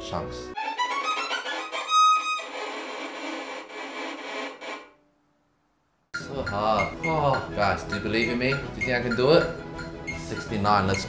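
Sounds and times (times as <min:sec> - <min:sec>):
violin staccato playing: 0:00.6 - 0:04.5, 0:06.2 - 0:11.0.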